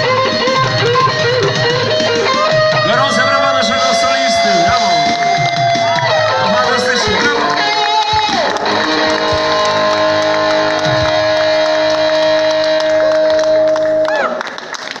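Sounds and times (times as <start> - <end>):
drums: 0.0 - 14.2
electric guitar: 0.0 - 15.0
keyboards: 0.0 - 15.0.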